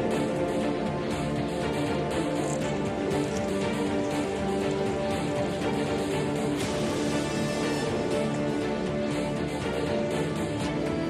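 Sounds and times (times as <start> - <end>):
instrumental background music: 0.0 - 11.0.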